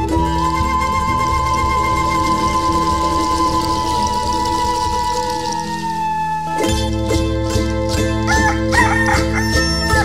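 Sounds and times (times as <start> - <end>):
strummed string instrumental music: 0.0 - 10.0
rooster crowing: 8.3 - 10.0.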